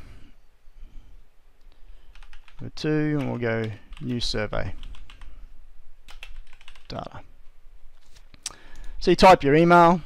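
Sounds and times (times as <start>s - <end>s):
computer keyboard typing: 2.1s - 5.4s, 6.1s - 7.0s.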